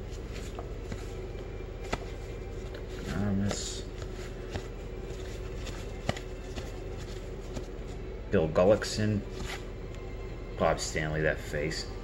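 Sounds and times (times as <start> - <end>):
cardboard cards sliding: 0.1 - 8.0, 9.3 - 9.7.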